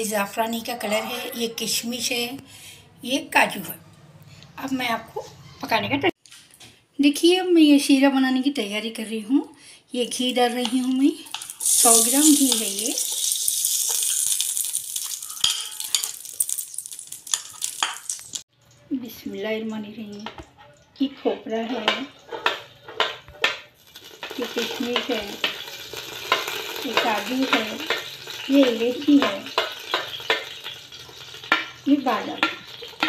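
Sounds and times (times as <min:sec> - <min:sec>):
ghee sizzling in a pot: 0:10.0 - 0:18.5, 0:21.7 - 0:33.0
metal spoon scraping a pot: 0:11.3 - 0:16.3.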